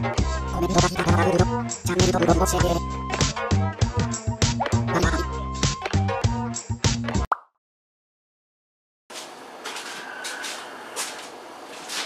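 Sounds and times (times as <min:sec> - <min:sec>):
background music: 0:00.0 - 0:07.3.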